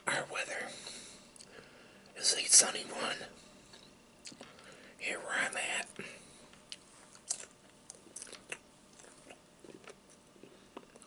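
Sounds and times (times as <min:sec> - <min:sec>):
chewing with mouth clicks: 0:06.6 - 0:11.0.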